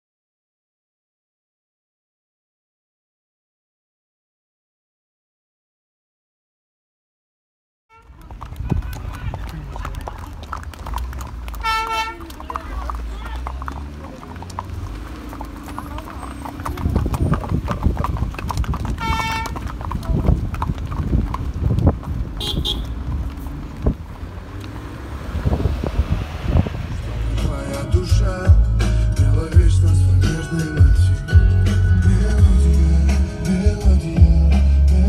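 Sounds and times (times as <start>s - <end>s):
car driving on rough road: 7.9s - 35.0s
short car horn beeps: 22.4s - 22.9s.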